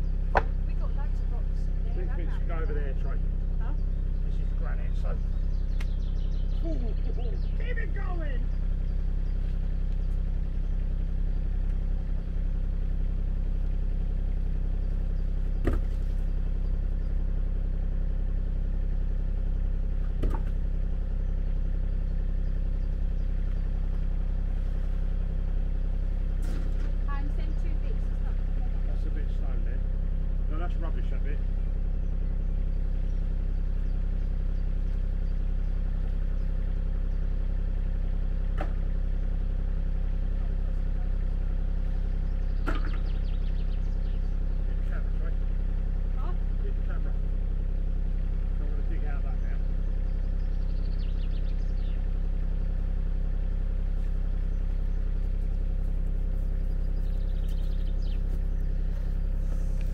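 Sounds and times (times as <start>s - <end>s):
diesel engine idling: 0.0s - 59.9s.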